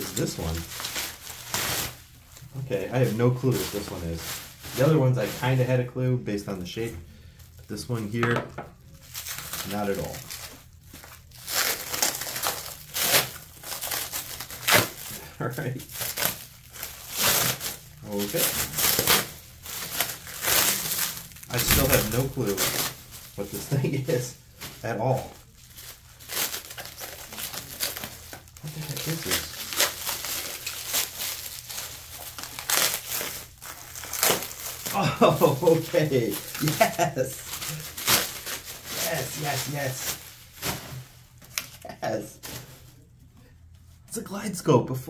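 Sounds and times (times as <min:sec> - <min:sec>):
plastic wrapping crinkling: 0:00.0 - 0:05.8, 0:07.3 - 0:43.1.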